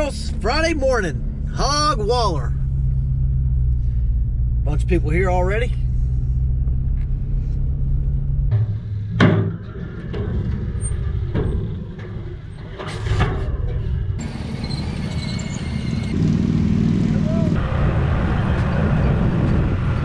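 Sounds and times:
vehicle engine drone: 0.0 - 20.0
rough vehicle noise with knocks: 5.8 - 16.3.

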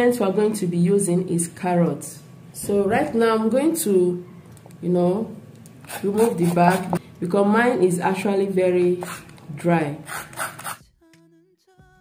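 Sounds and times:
knife scraping carrot: 5.8 - 7.0, 10.0 - 10.8.

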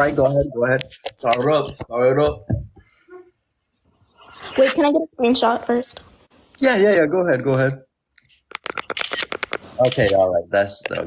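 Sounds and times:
sharp clicks and rustles: 8.2 - 10.2.

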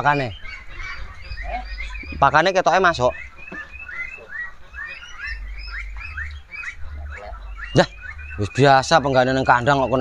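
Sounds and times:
ducklings peeping: 0.0 - 10.0.

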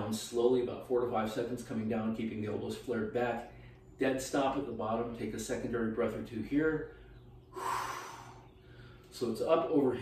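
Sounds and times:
man exhaling through mouth: 7.5 - 9.0.

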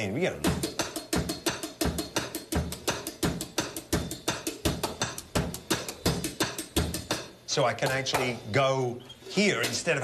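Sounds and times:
electronic drum kit rock beat: 0.0 - 8.4.

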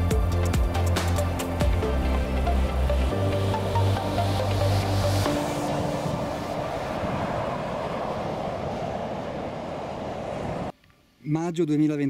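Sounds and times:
motorway traffic passing: 0.0 - 10.7.

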